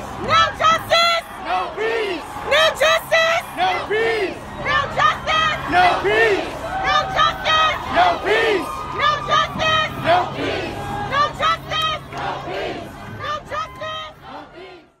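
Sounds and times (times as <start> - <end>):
crowd chanting: 0.0 - 15.0.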